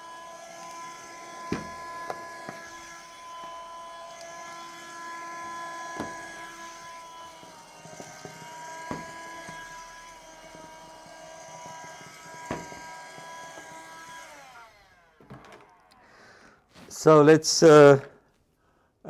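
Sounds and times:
window vacuum motor whine: 0:00.0 - 0:16.6.

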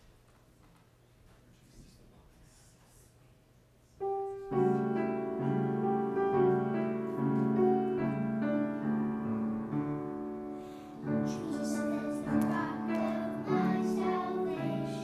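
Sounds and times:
piano introduction: 0:04.0 - 0:15.0.

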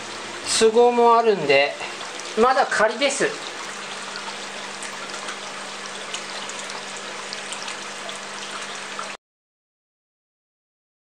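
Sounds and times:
faint water drips: 0:00.0 - 0:09.2
low steady hum: 0:00.0 - 0:09.2
water trickling onto wet rocks: 0:00.1 - 0:09.2.

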